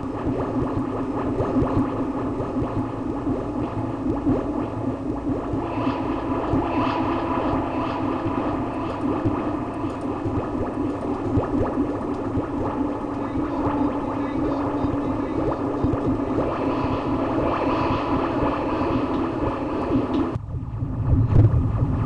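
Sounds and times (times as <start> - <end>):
electronic crackles: 0.0 - 20.4
low drone: 0.0 - 22.0.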